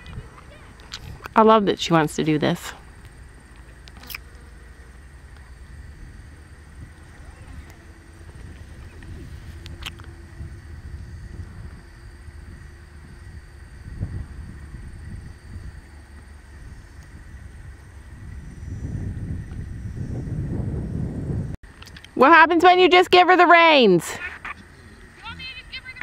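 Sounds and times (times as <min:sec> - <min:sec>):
wind rumbling on microphone: 0:00.0 - 0:23.3.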